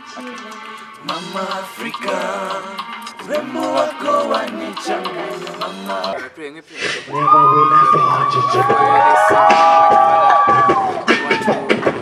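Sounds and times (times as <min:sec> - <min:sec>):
young voices singing: 0:00.0 - 0:06.4, 0:07.0 - 0:12.0.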